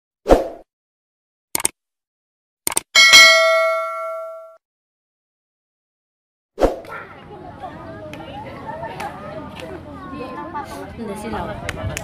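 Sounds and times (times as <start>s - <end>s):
double mouse clicks: 1.6s - 1.8s, 2.6s - 2.9s
bell ding: 3.0s - 4.6s.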